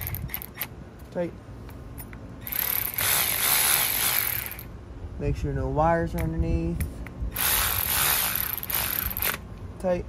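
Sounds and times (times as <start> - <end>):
cordless ratchet motor whirring: 2.4 - 4.7, 7.3 - 9.4.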